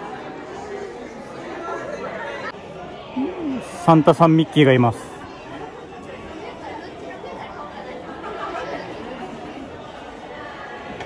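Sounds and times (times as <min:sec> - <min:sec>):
background chatter of voices: 0:00.0 - 0:11.0.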